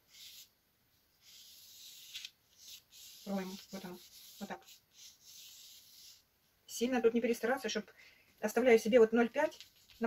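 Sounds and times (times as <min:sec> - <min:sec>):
pencil scratching on paper: 0:00.0 - 0:00.5, 0:01.2 - 0:06.3.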